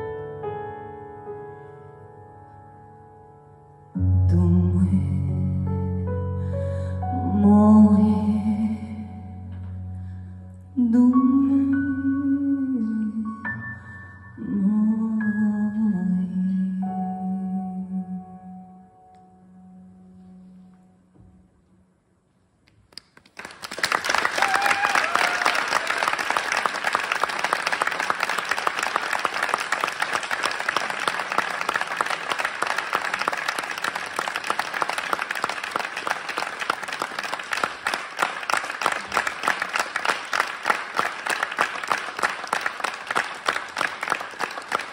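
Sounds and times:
audience applauding: 0:22.9 - 0:44.9
brief cheer: 0:24.2 - 0:26.4.

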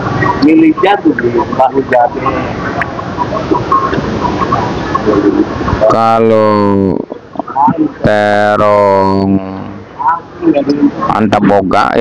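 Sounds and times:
faint chirp-like calls: 0:00.0 - 0:06.2
busy market din: 0:00.0 - 0:12.0.

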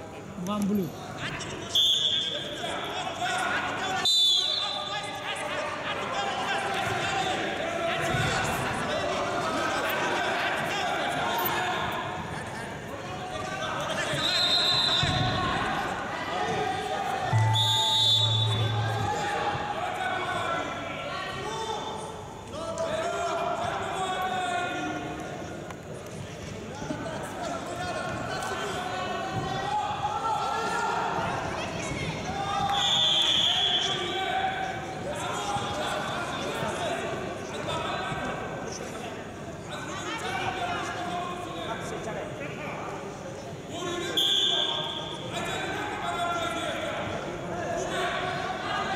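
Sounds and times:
voices echoing in a hall: 0:00.0 - 0:48.9
short high whistle tones: 0:17.3 - 0:19.3.

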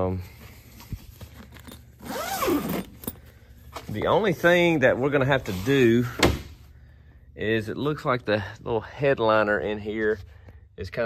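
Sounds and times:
zipper pulled open: 0:01.3 - 0:03.2.

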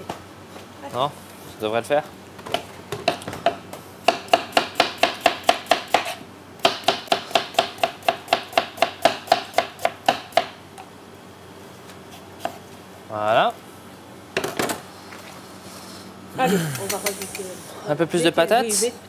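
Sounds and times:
knife slicing potato on board: 0:04.1 - 0:10.3.

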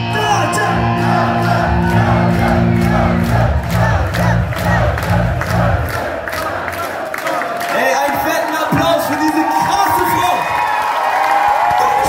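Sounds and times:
live band low sustained notes: 0:00.0 - 0:06.1
crowd shouting and cheering: 0:00.0 - 0:12.0.

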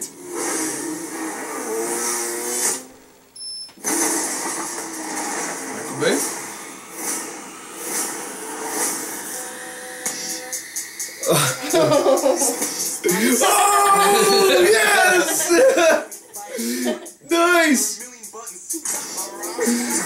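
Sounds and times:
trailer soundtrack through laptop speaker: 0:00.0 - 0:20.0.

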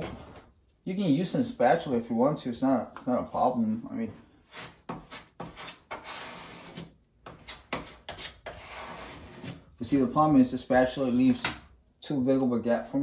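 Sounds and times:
putty knife scraping wood: 0:04.4 - 0:09.7.

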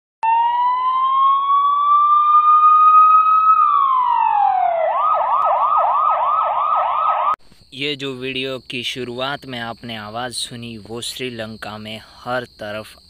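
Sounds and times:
emergency vehicle siren: 0:00.2 - 0:07.4.

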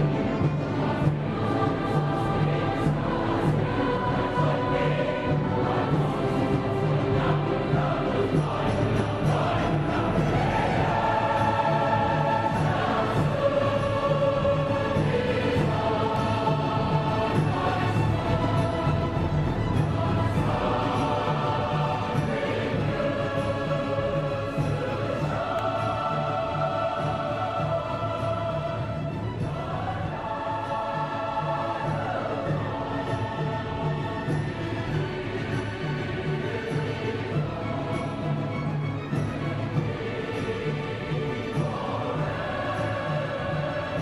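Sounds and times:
choir singing in harmony: 0:00.0 - 0:44.0
low pulsing accompaniment: 0:00.0 - 0:44.0.

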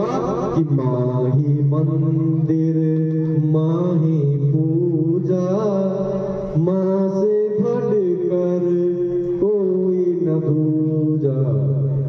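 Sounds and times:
person chanting long notes: 0:00.0 - 0:12.0.

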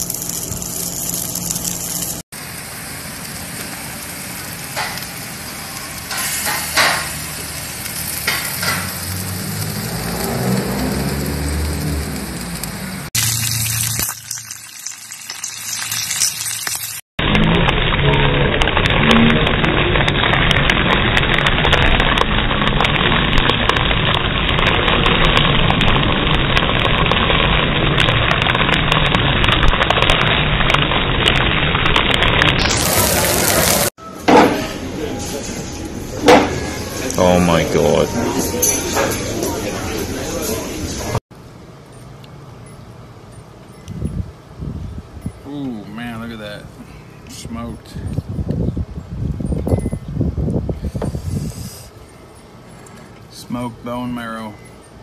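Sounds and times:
bones sizzling and spitting: 0:00.0 - 0:02.2, 0:03.3 - 0:33.9.

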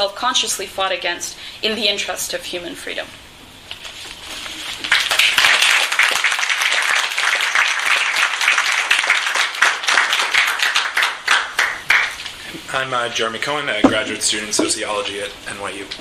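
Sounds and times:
audience applauding: 0:04.9 - 0:12.2.

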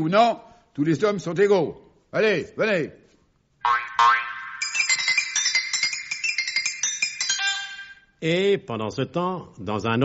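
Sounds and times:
run of bright high notes: 0:04.5 - 0:08.2.

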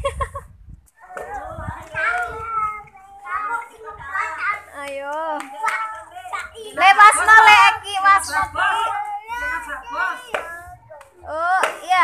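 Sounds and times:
children calling out: 0:01.0 - 0:07.6, 0:08.2 - 0:11.3.

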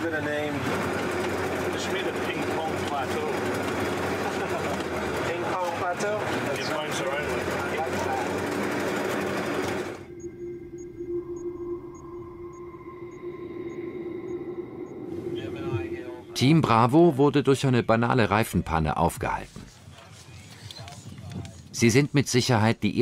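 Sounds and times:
truck engine and road noise: 0:00.0 - 0:10.9
people talking: 0:01.7 - 0:08.4, 0:15.4 - 0:23.0
electronic tones: 0:09.6 - 0:16.7.

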